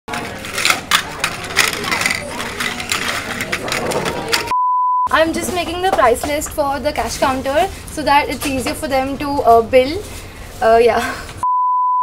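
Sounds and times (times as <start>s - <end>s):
badges clicking and clattering: 0.1s - 4.5s.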